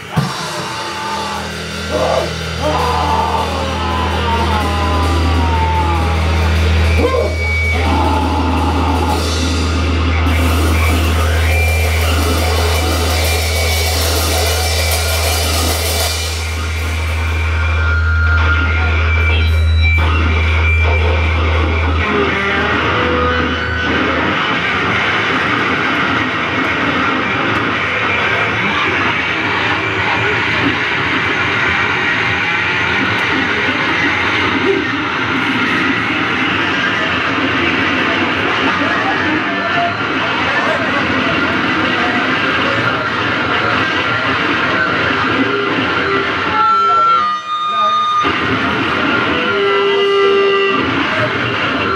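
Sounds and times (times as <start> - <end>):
deep steady drone: 0.0 - 38.8
distorted bass and synthesizer noise: 0.0 - 51.9.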